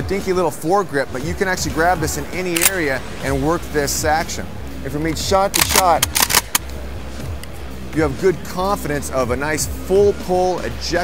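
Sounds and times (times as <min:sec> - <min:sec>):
shotgun action metallic clacks: 0:02.6 - 0:02.9, 0:05.5 - 0:06.7.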